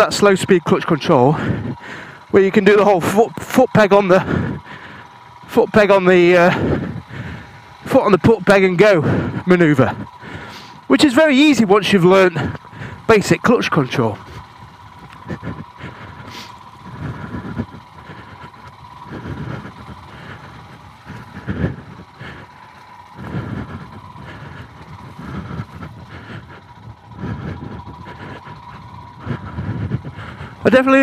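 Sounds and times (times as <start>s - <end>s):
motorcycle engine rumbling: 0.0s - 31.0s.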